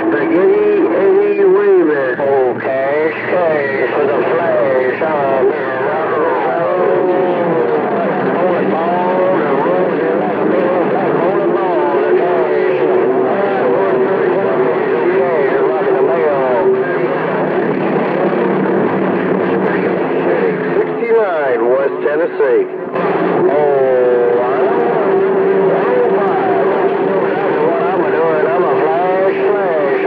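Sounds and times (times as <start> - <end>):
steady radio whistle: 0.0 - 17.6
garbled radio voices: 0.0 - 30.0.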